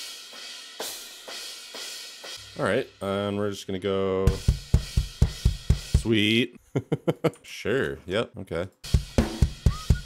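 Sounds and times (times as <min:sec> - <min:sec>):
drum machine cymbals: 0:00.0 - 0:06.3, 0:08.8 - 0:10.0.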